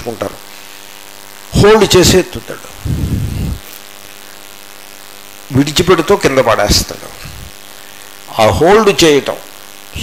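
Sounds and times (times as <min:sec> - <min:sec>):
steady low hum: 0:00.0 - 0:10.0
man lecturing: 0:01.5 - 0:02.8, 0:05.5 - 0:07.2, 0:08.3 - 0:09.4.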